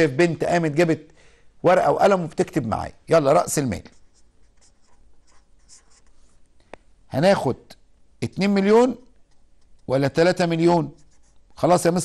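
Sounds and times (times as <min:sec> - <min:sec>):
marker scratching on paper: 0:03.4 - 0:06.4, 0:09.1 - 0:11.9.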